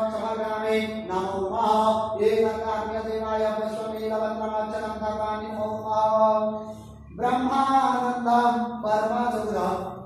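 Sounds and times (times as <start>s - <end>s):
person chanting on held pitch: 0.0s - 10.0s.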